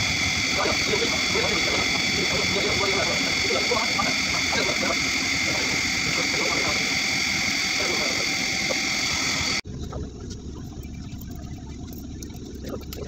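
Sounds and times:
electric motor humming: 0.0s - 13.0s.

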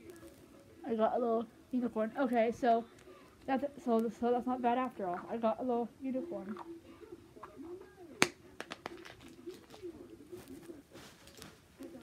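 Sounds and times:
plastic capsule snap: 8.2s - 9.8s.

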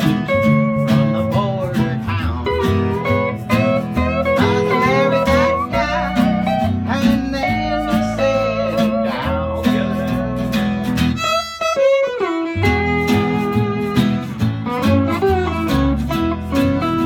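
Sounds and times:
steel guitar sliding notes: 0.0s - 17.0s
western swing band playing: 0.0s - 17.0s.

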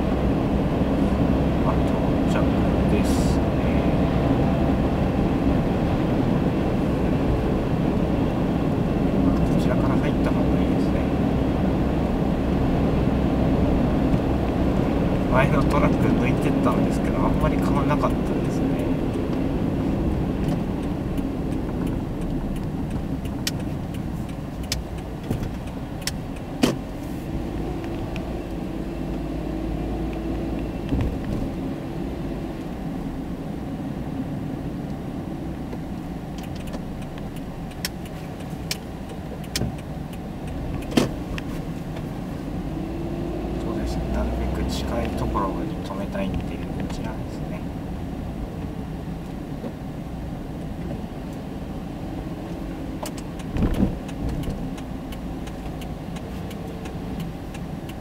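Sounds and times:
car engine and tyre noise: 0.0s - 58.0s
light clicks and ticks: 20.1s - 26.8s, 35.7s - 42.2s, 44.1s - 47.6s, 52.5s - 58.0s.

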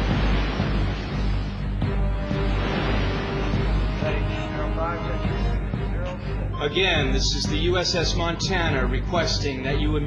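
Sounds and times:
heavy seas breaking against bow: 0.0s - 8.9s
dramatic orchestral film music: 0.0s - 10.0s
man's voice over radio: 4.0s - 10.0s.

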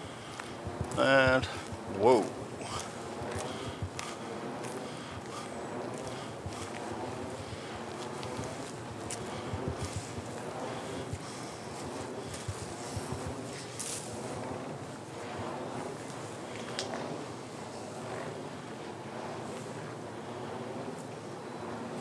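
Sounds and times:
wind hiss: 0.0s - 22.0s.

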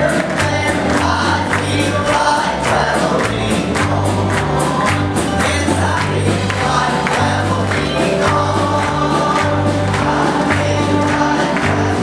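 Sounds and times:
congregation singing gospel song: 0.0s - 12.0s
instrumental accompaniment: 0.0s - 12.0s.

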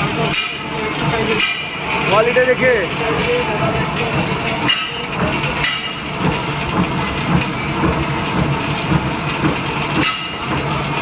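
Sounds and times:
machine mechanical rattle: 0.0s - 11.0s.

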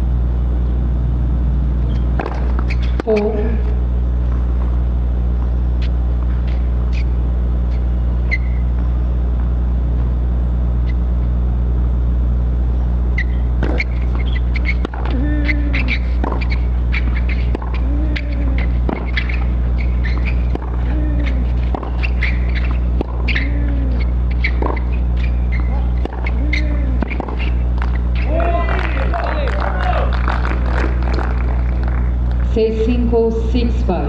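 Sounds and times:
electrical hum: 0.0s - 34.0s
racket striking tennis ball: 2.2s - 3.1s, 13.6s - 28.4s
voices calling out: 13.2s - 32.6s
player grunting: 15.1s - 16.0s.

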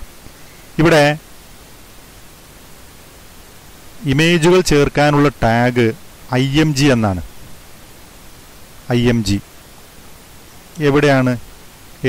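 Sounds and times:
background hiss: 0.0s - 12.0s
man's voice: 0.8s - 1.2s, 4.0s - 7.3s, 8.9s - 9.4s, 10.8s - 11.4s.

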